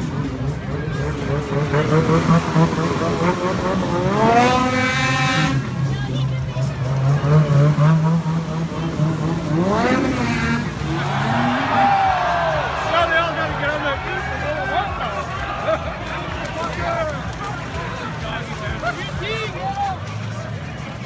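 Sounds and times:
snowmobile engine revving: 0.0 - 19.2
crowd voices: 0.0 - 21.0.

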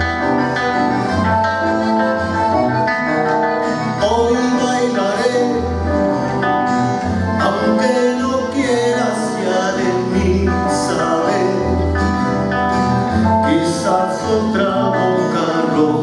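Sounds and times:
accordion playing: 0.0 - 16.0
guitars playing: 0.0 - 16.0.

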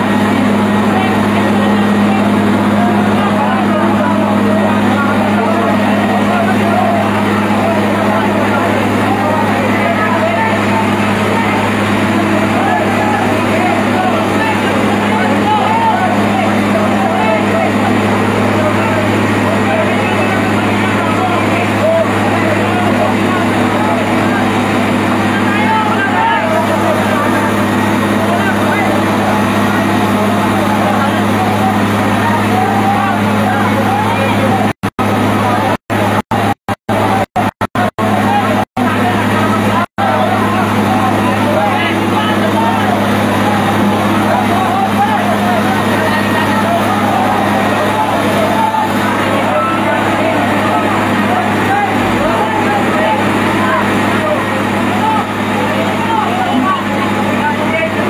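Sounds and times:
babble of voices: 0.0 - 58.0
truck engine humming: 0.0 - 58.0.

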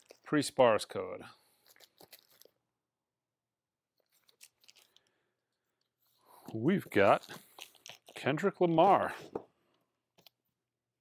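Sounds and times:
vinyl records rustling in sleeves: 6.4 - 7.7.

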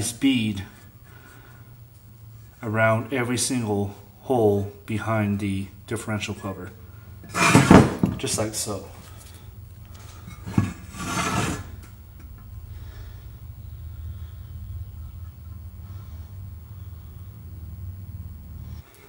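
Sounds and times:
steady low hum: 0.0 - 19.0
metal scraping on wood: 7.2 - 8.7, 9.9 - 12.4.

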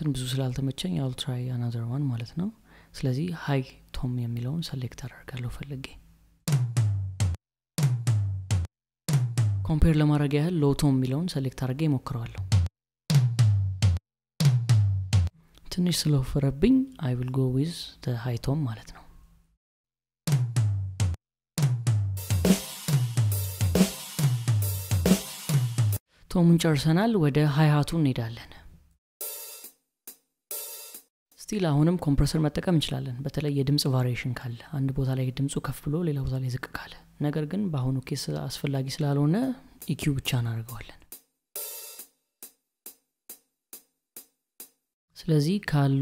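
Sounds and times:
programmed drum beat: 6.5 - 9.8, 12.3 - 15.3, 20.3 - 26.0, 29.2 - 31.1, 39.8 - 44.8
hi-hat hits: 22.2 - 26.0, 29.2 - 31.1.

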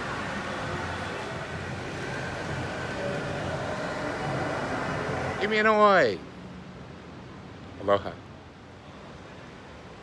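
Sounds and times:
faint murmur of voices: 0.0 - 6.4.

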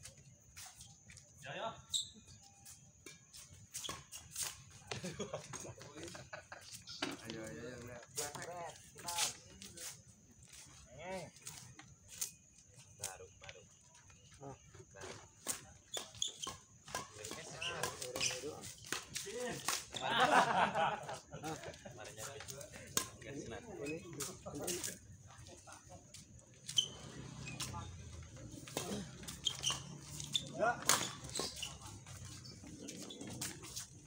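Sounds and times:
racket hitting shuttlecock: 28.6 - 31.5.

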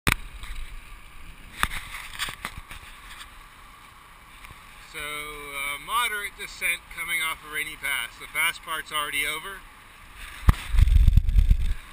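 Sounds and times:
wind and bicycle tyre hiss: 0.1 - 11.9
man talking: 4.8 - 9.6.

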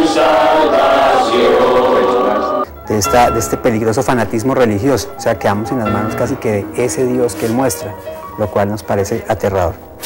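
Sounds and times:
choir singing long notes: 0.0 - 4.4.

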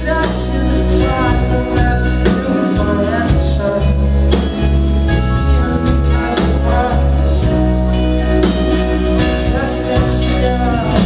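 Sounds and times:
person singing: 0.0 - 11.0
rock band playing: 0.0 - 11.0.

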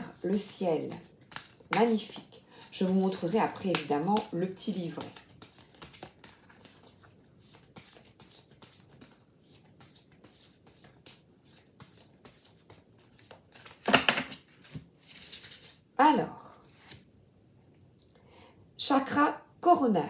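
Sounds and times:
cards being shuffled: 0.1 - 15.8, 16.7 - 17.1.

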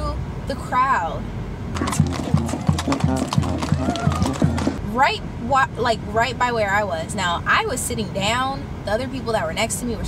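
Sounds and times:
hooves clip-clopping on asphalt: 1.8 - 4.8
music: 1.8 - 4.8.

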